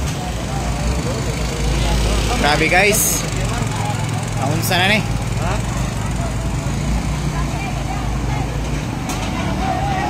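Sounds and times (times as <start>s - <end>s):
vehicle engine running low: 0.0s - 10.0s.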